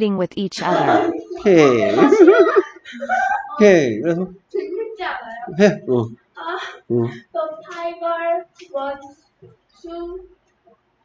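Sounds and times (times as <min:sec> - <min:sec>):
child singing: 0:00.6 - 0:02.3, 0:03.2 - 0:09.2, 0:09.8 - 0:10.3.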